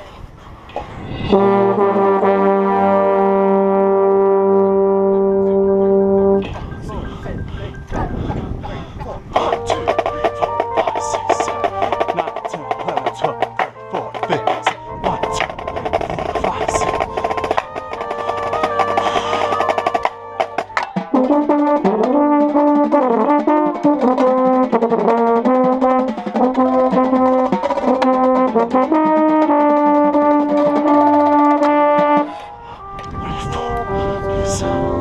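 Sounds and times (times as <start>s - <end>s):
brass chords: 1.1s - 35.0s
loud euphonium melody: 1.2s - 7.1s, 9.2s - 35.0s
drums and wood-block patterns: 9.4s - 32.4s.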